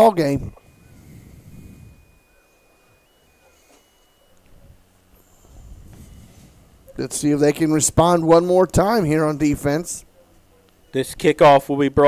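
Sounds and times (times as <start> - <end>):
thin high steady tone: 0.0 - 12.0.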